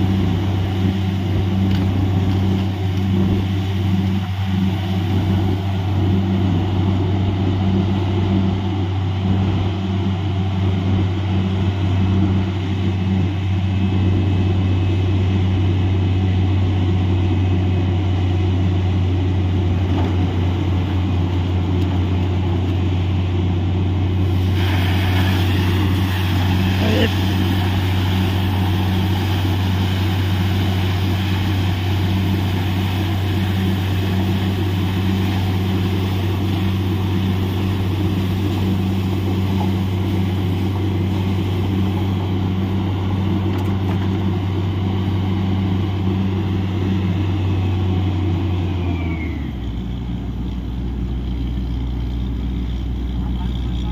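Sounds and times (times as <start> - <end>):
drilling rig engine running: 0.0 - 53.9
continuous hiss: 24.1 - 43.4.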